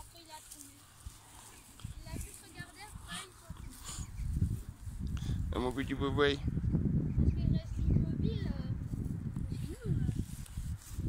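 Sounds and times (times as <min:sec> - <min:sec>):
wind rumble on microphone: 0:00.9 - 0:11.0.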